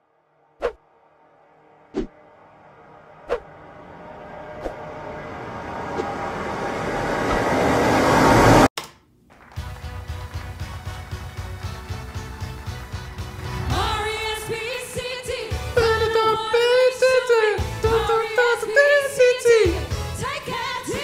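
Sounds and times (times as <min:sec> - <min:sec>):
rising noise swell: 0:00.0 - 0:08.7
music: 0:09.3 - 0:21.0.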